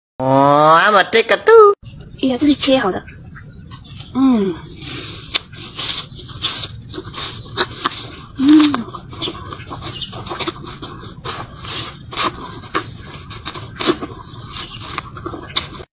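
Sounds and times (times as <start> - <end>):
person chewing apple: 3.7 - 15.9.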